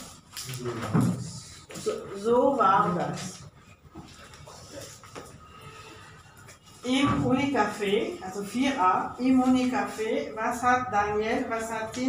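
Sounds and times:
book handling sounds: 0:00.0 - 0:02.0, 0:03.9 - 0:05.6.

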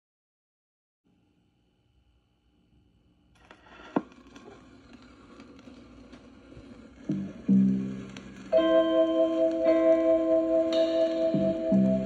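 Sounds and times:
vinyl surface hiss and crackle: 0:02.6 - 0:12.0
soul song: 0:07.3 - 0:12.0.

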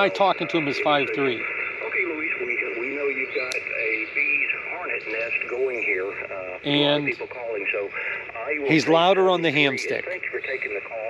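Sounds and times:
radio voice through speaker: 0:00.0 - 0:11.0.

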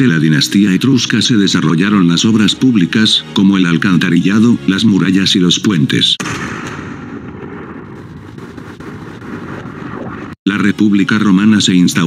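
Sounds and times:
low rumbling with fine crackle: 0:06.3 - 0:10.4.

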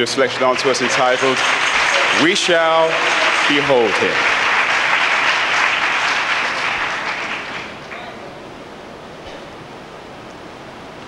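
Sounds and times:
audience applause: 0:00.0 - 0:08.2.

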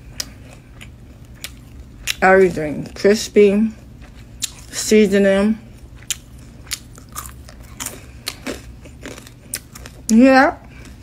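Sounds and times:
crunching fried chicken: 0:05.7 - 0:11.0.

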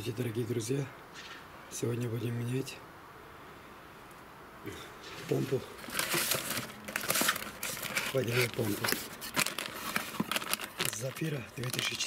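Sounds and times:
cardboard box and plastic bag rustling: 0:05.0 - 0:12.0
sharp crackles: 0:05.0 - 0:12.0.

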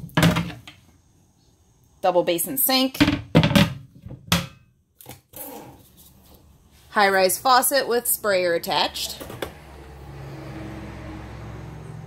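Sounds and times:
clattery knocks on countertop: 0:03.0 - 0:04.6.

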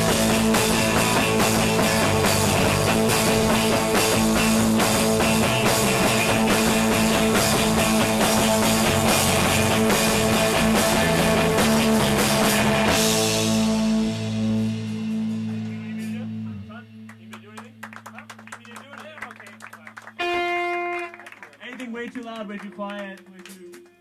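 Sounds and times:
rock band playing: 0:00.0 - 0:21.4
people talking: 0:15.6 - 0:20.0, 0:21.4 - 0:24.0.

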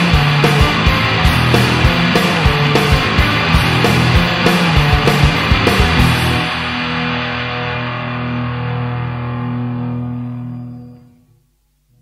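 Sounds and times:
distorted electric guitar chord ringing: 0:00.0 - 0:12.0.

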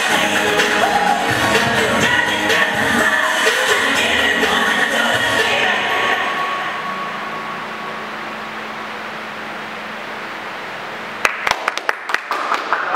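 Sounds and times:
dance music held note: 0:00.0 - 0:09.4
hand claps: 0:11.2 - 0:12.9.

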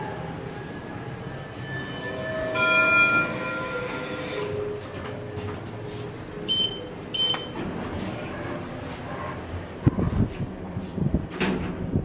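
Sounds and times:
elevator chime: 0:01.2 - 0:07.9.

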